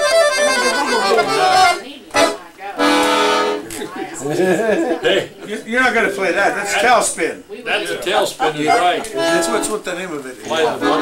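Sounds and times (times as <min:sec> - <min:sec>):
piano accordion playing: 0:00.0 - 0:03.6, 0:08.6 - 0:09.9, 0:10.5 - 0:11.0.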